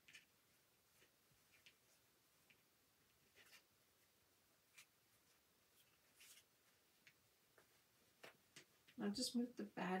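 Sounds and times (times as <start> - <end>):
fingers rustling fabric: 4.7 - 9.0.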